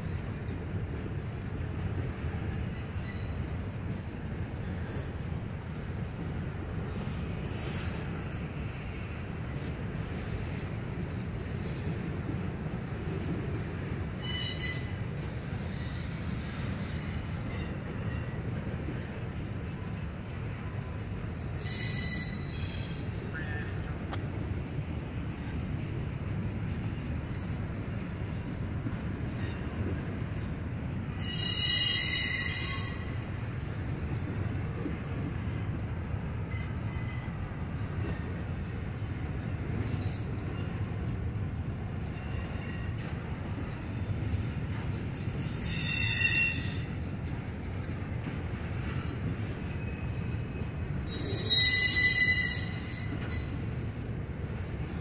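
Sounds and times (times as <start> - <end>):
freight train wheels rumbling: 0.0 - 55.0
high-pitched wheel squeals: 14.2 - 15.0, 21.6 - 23.0, 31.2 - 33.2, 40.0 - 40.9, 45.3 - 46.9, 51.1 - 53.6.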